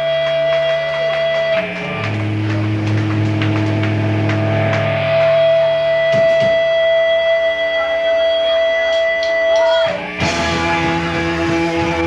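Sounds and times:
electric guitar low droning note: 0.0 - 12.0.

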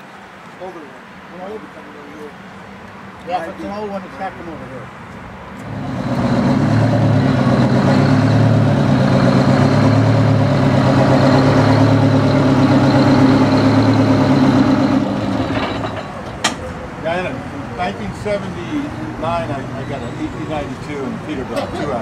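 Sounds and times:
heavy truck engine running: 5.6 - 16.8.

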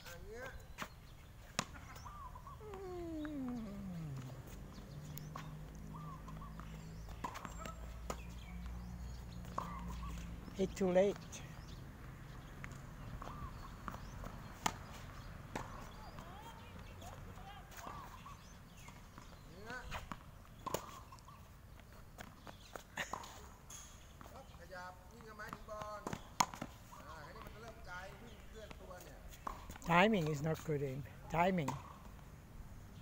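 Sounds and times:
tennis balls struck by rackets: 0.8 - 21.4, 25.2 - 27.9, 28.6 - 30.5, 31.5 - 32.3
faint voices: 2.6 - 4.6.

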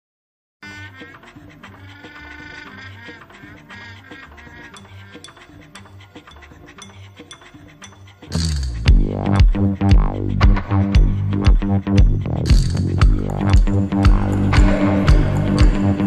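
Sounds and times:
quiet music with steady beat: 3.0 - 16.0.

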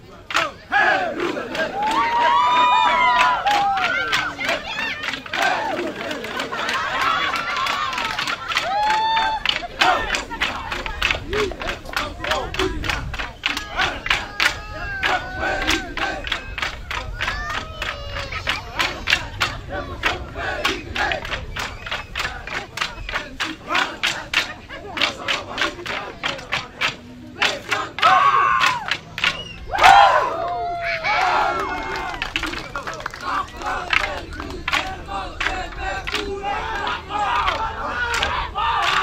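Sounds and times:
men shouting and chanting: 0.0 - 39.0
men yelling in a group: 0.3 - 8.0, 11.3 - 16.5, 27.4 - 29.0, 35.0 - 39.0
wooden sticks clacking together: 21.2 - 29.6.

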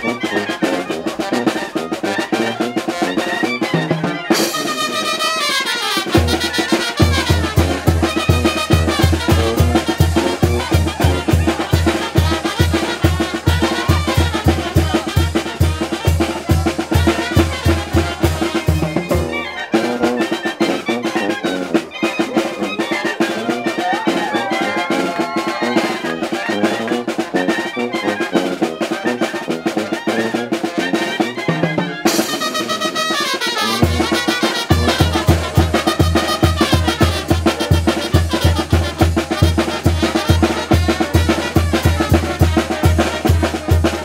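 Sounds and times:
brass band playing dance music: 0.0 - 44.0
steady low drum beat: 33.8 - 44.0.

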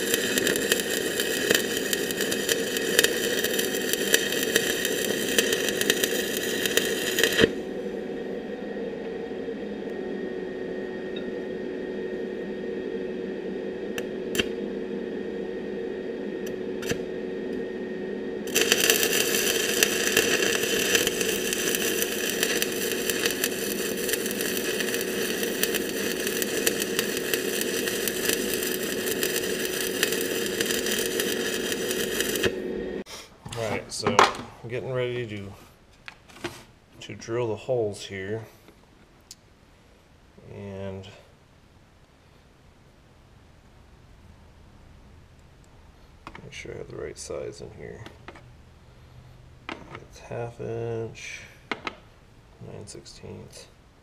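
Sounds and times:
welding arc crackling: 0.0 - 33.1
steady hum: 0.0 - 36.0.

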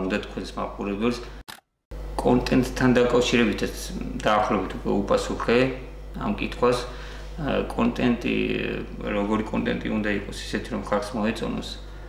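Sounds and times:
man speaking: 0.0 - 1.3, 2.2 - 11.8.

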